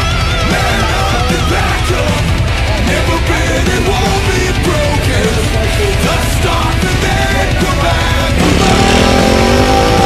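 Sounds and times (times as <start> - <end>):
dirt bike engine revving: 0.0 - 10.0
heavy rock music: 0.0 - 10.0.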